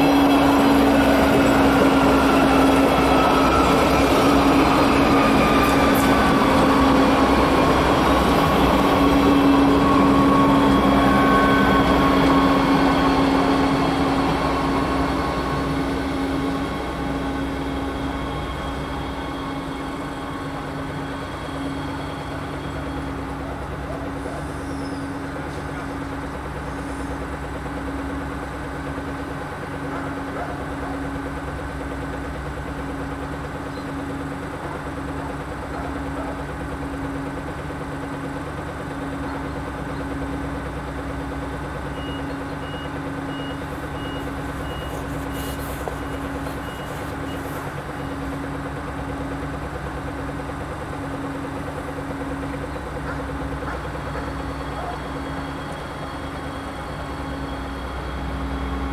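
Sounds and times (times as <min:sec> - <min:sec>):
train engine idling: 0:00.0 - 0:58.9.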